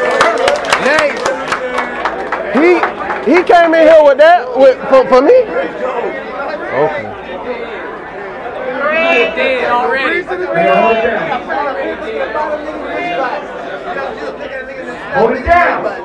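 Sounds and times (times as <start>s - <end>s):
men's voices chattering: 0.0s - 16.0s.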